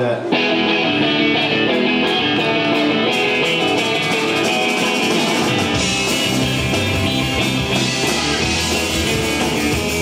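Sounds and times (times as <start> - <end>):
electric guitar punk rock: 0.2 - 10.0.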